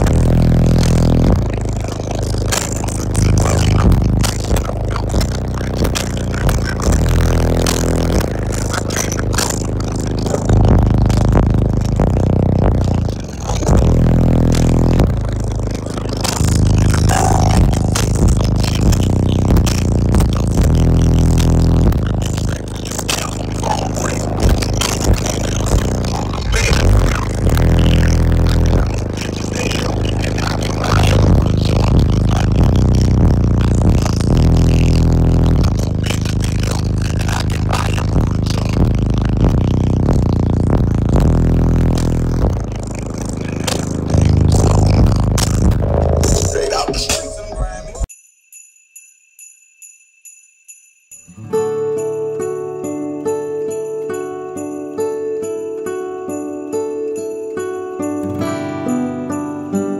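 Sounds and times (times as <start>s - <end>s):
bass-heavy music on subwoofers: 0.0s - 48.1s
rattling buzz: 0.0s - 48.1s.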